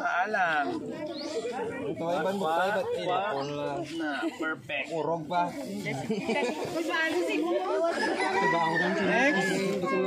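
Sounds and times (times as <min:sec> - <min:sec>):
adults and children talking: 0:00.0 - 0:10.0.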